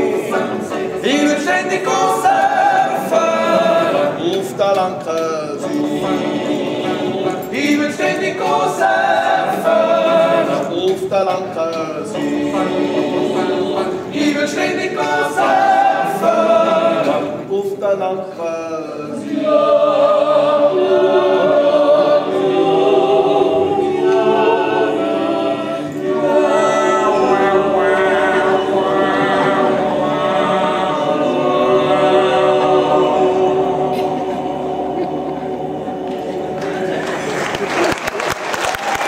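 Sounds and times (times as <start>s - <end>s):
men singing a cappella harmony: 0.0s - 37.0s.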